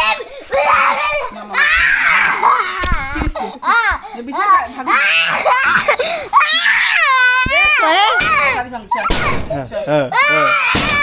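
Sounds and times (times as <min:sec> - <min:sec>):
young child crying loudly: 0:00.0 - 0:04.0, 0:04.8 - 0:09.5, 0:10.1 - 0:11.0.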